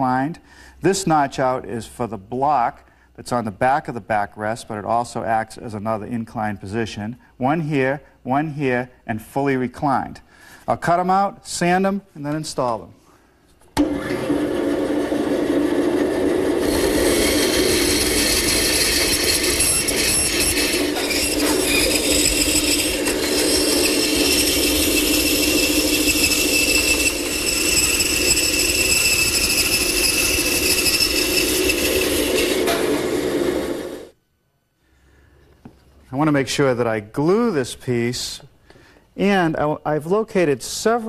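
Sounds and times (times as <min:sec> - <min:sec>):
bandsaw cutting wood: 0:13.8 - 0:34.1.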